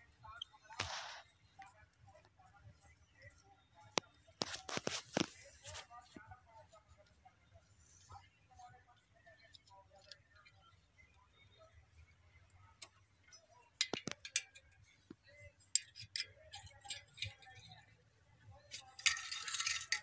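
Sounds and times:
spanner clinking on bolts: 12.8s - 14.8s, 15.6s - 17.8s, 18.7s - 20.0s
metallic scraping: 18.7s - 20.0s.

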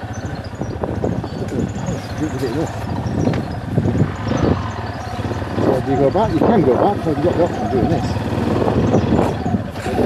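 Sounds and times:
motorcycle engine at low revs: 0.0s - 10.0s
wind on microphone: 0.0s - 10.0s.

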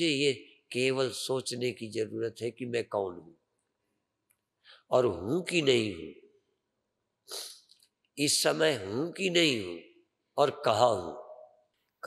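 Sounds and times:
man speaking: 0.0s - 3.3s, 4.9s - 6.1s, 8.2s - 9.8s, 10.4s - 11.2s
sharp intake of breath: 7.3s - 7.6s.

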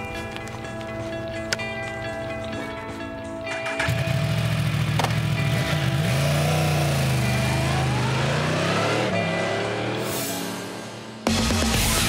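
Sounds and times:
motorcycle engine running: 0.0s - 8.5s
background music: 0.0s - 12.0s.

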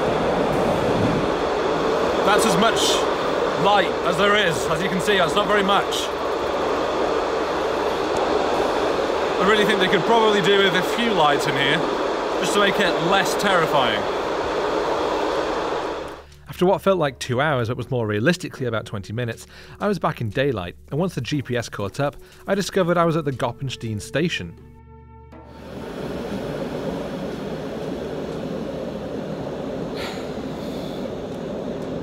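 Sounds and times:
train rumbling in tunnel: 0.0s - 17.1s, 25.4s - 32.0s.

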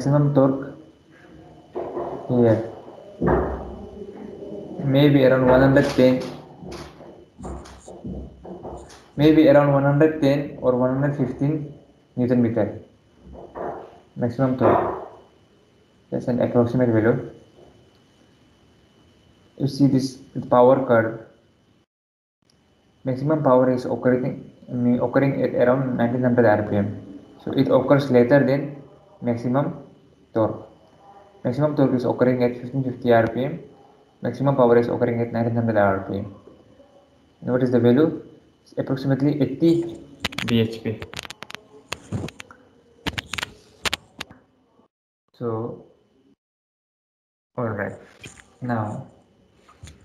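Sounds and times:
faint background hum: 0.0s - 21.9s, 22.5s - 46.4s, 47.6s - 50.0s
man speaking: 2.3s - 2.8s, 4.0s - 6.5s, 9.2s - 12.8s, 37.4s - 41.3s, 47.6s - 49.1s.

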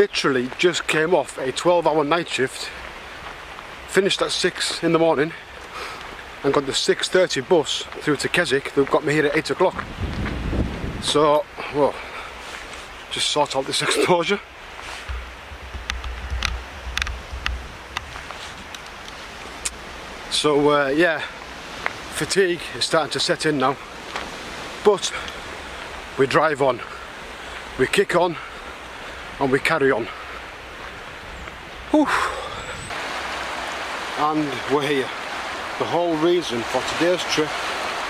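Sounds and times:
wind buffeting microphone: 9.4s - 11.6s, 15.1s - 20.2s, 30.3s - 38.0s
man exhaling tiredly: 32.0s - 32.8s.

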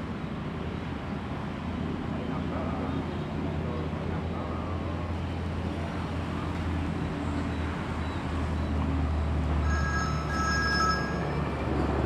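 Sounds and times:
road traffic rumble: 0.0s - 12.0s
mobile phone ringtone: 9.6s - 11.7s.

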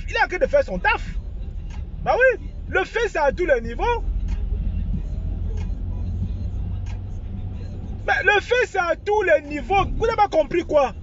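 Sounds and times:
car rumble inside cabin: 0.0s - 11.0s
faint clicks: 4.2s - 4.5s, 5.6s - 5.8s, 6.8s - 7.1s.

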